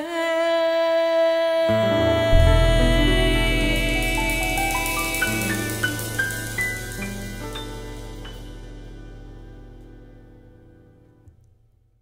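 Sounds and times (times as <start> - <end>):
jazz combo final chord ringing: 1.9 - 10.9.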